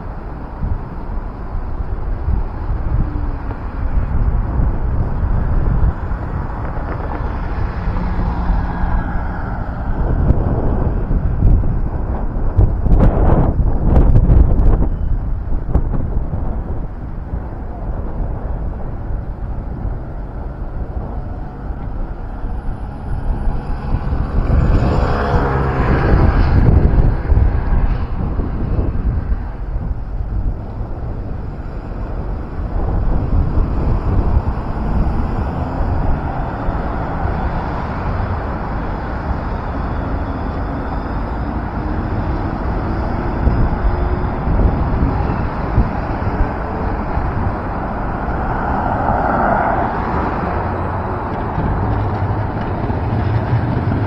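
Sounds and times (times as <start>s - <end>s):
cars and trams passing: 0.0s - 54.0s
low traffic rumble: 0.0s - 54.0s
vehicle pulling away whine: 0.0s - 54.0s.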